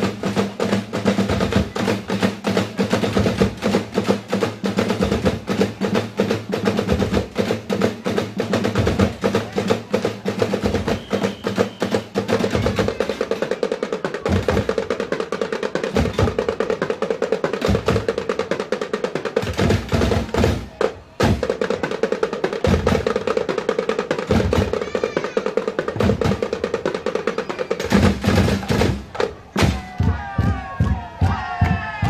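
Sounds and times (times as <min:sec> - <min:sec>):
plastic barrel drums playing: 0:00.0 - 0:32.0.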